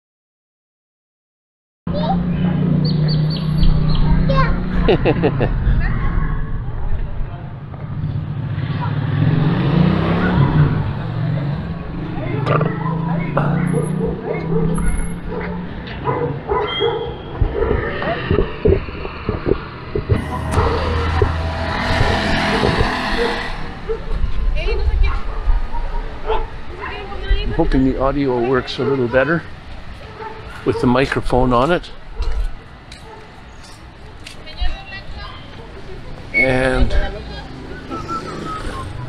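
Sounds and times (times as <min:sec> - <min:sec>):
people talking: 0:01.9 - 0:02.7, 0:03.9 - 0:07.5, 0:17.4 - 0:23.4, 0:24.5 - 0:25.5
motor vehicle running: 0:01.9 - 0:28.6.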